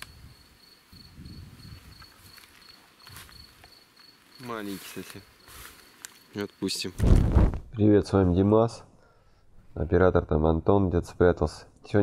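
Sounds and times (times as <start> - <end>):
insect chirping: 0.0 - 7.4.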